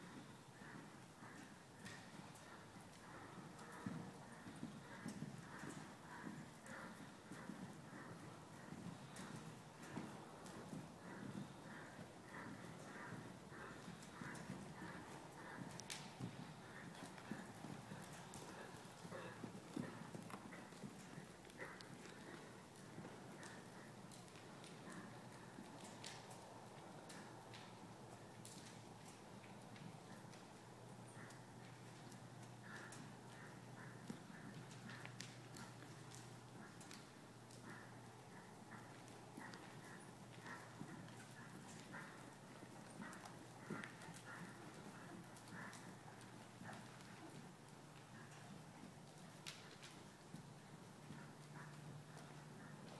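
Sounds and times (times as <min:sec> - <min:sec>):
horse hoofbeats on soft dirt: 0:00.0 - 0:52.9.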